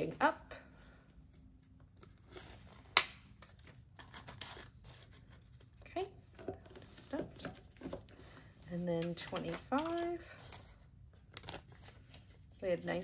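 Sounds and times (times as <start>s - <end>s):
paper envelopes rustling: 0.7s - 5.9s, 6.6s - 13.0s.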